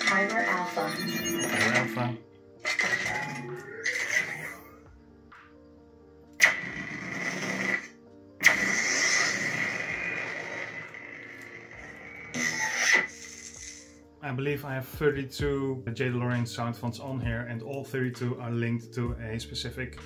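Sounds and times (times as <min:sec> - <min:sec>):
lightsaber ignition: 0:06.4 - 0:13.9
lightsaber retraction: 0:11.9 - 0:13.8.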